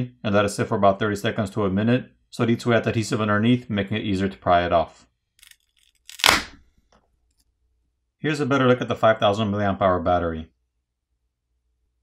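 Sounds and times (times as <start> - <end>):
battery adhesive crackle: 5.4 - 6.6.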